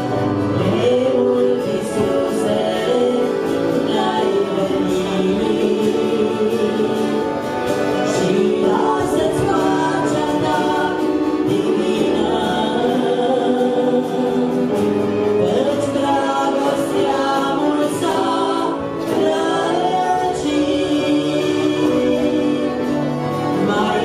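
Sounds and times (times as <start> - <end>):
instrumental accompaniment: 0.0 - 24.0
voices singing in harmony: 0.0 - 24.0.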